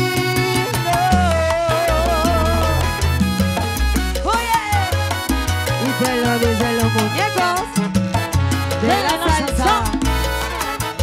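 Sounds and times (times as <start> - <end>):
congas and timbales beat: 0.0 - 11.0
pulsing bass line: 0.0 - 11.0
salsa band playing: 0.0 - 11.0
held melody note with vibrato: 1.8 - 4.1.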